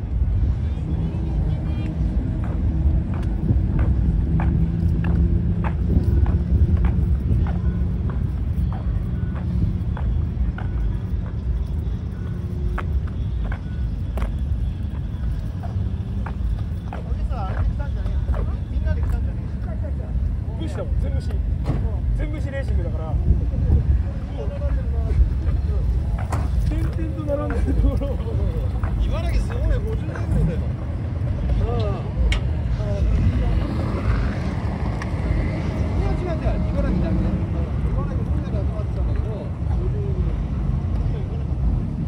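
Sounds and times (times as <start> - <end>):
car engines idling: 0.0 - 42.0
people talking: 0.4 - 41.8
footsteps: 1.9 - 19.5.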